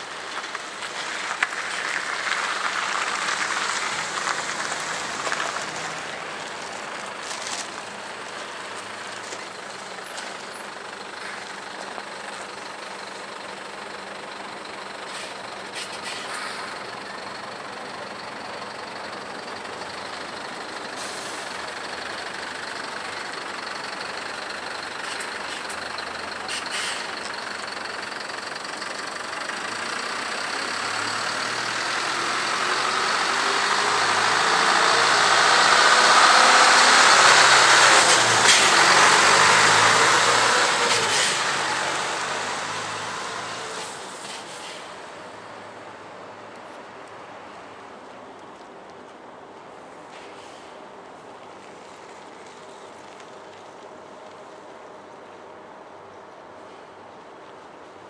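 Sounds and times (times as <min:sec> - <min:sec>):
truck engine passing by: 0:00.0 - 0:46.1.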